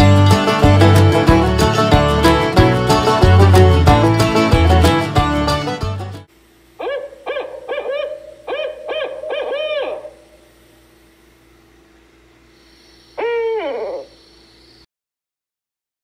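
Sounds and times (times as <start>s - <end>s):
owl hooting: 6.8s - 11.1s, 12.5s - 14.8s.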